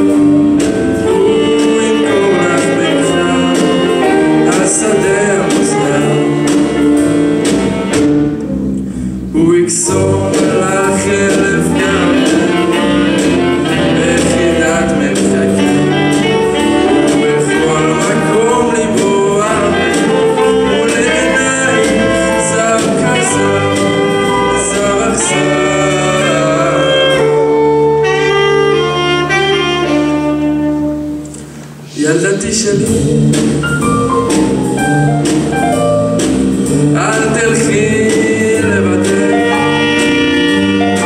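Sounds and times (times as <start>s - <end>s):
drums with cymbals: 0.0s - 8.4s, 9.9s - 26.6s, 32.5s - 41.0s
saxophones playing melody: 0.0s - 8.4s, 11.2s - 31.4s, 38.7s - 41.0s
keyboard: 0.0s - 41.0s
live band instrumental: 0.0s - 41.0s.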